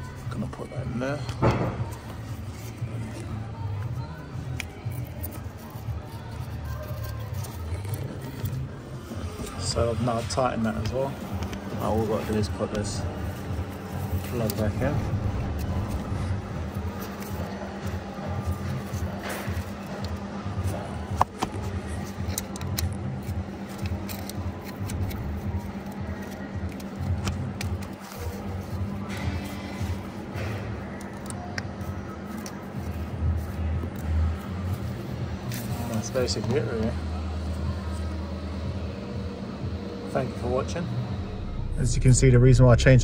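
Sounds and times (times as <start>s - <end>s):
background music with low beat: 0.0s - 43.0s
car engine idling: 40.0s - 43.0s.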